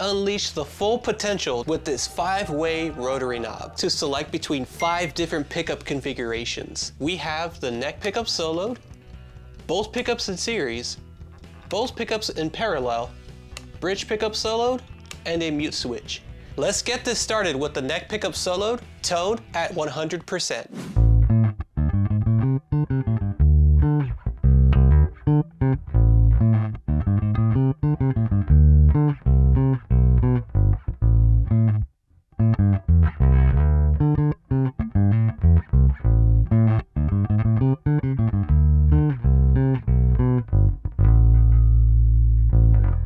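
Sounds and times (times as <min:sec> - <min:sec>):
electric bass plucked notes: 0:00.0 - 0:19.9, 0:21.0 - 0:43.0.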